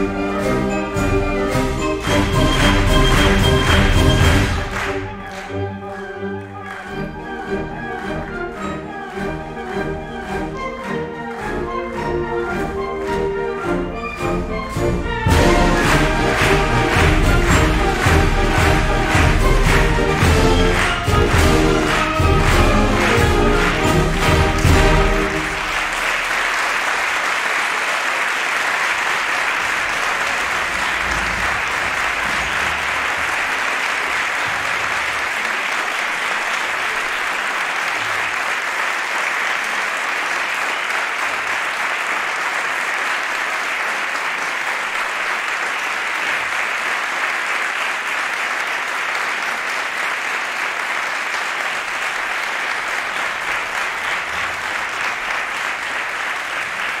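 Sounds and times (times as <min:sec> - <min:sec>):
audience applauding: 0:00.0 - 0:57.0.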